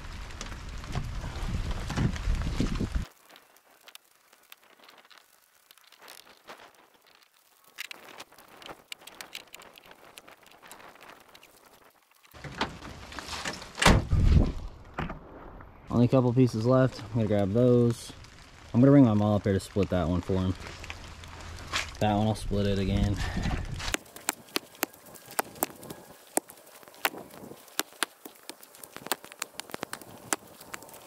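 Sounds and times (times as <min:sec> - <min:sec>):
raindrop ticks: 0:00.0 - 0:13.0, 0:16.6 - 0:31.0
rain and wind on microphone: 0:00.0 - 0:31.0.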